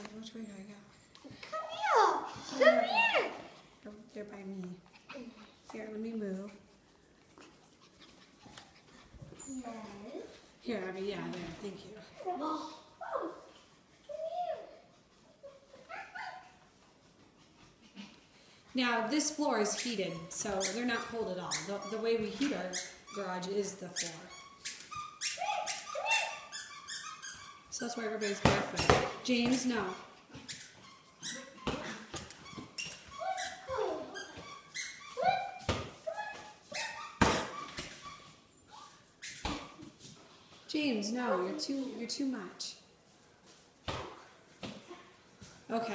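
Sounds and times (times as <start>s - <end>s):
puppy high-pitched calls: 15.4s - 16.6s, 19.7s - 23.3s, 23.9s - 28.4s, 29.8s - 39.6s.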